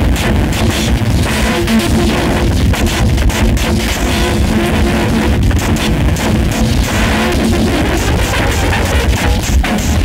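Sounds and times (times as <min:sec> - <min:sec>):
distorted noise music: 0:00.0 - 0:10.0.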